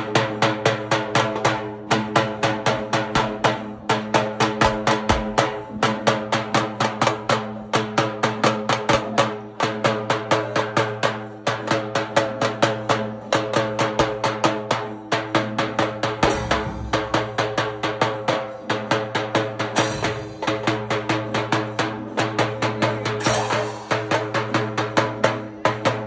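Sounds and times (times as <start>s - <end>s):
loud fast drumming: 0.0s - 26.0s.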